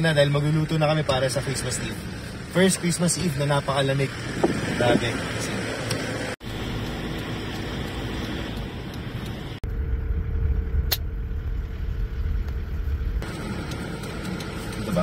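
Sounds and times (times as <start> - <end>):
car engine and tyre rumble: 0.0 - 15.0
low rumble: 6.4 - 15.0
sharp click: 10.9 - 11.1.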